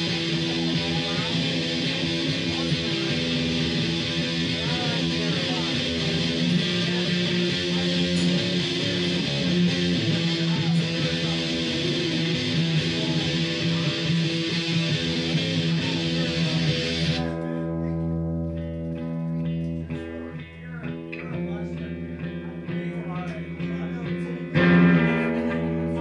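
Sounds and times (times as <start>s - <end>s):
electric guitar chords: 0.0s - 26.0s.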